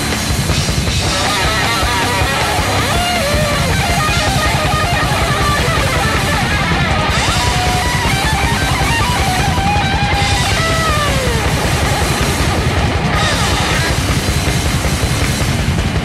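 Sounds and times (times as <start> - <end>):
distorted electric guitars: 0.0 - 16.0
fast dense drumming: 0.0 - 16.0.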